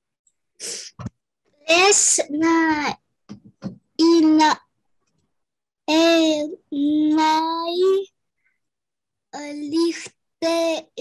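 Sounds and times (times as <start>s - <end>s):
child reading aloud: 1.6s - 3.0s, 4.0s - 4.6s, 5.9s - 8.1s, 9.4s - 11.0s.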